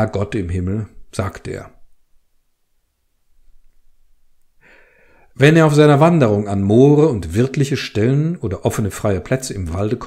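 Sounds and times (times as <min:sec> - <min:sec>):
man breathing in: 0:04.6 - 0:05.4.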